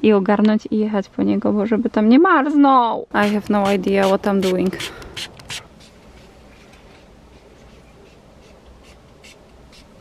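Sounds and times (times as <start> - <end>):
soft scratching: 3.3 - 10.0.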